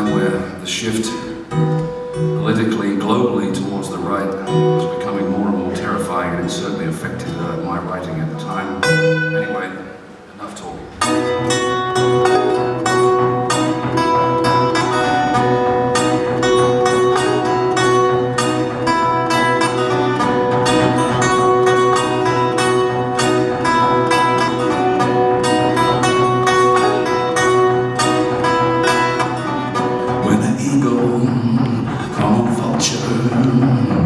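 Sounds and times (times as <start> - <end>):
resonator guitar fingerstyle blues: 0.0 - 34.0.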